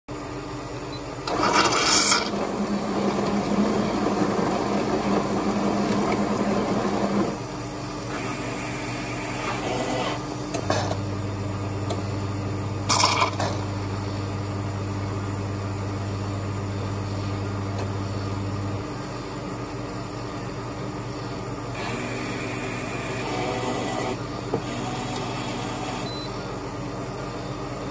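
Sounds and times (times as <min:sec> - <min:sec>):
coffee machine low hum: 0:00.1 - 0:27.9
coffee grinder grinding: 0:01.3 - 0:07.4, 0:12.9 - 0:13.5.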